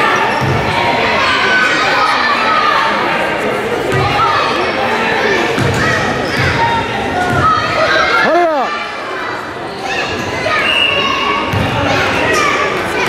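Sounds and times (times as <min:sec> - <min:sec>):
spectator chatter: 0:00.0 - 0:13.0.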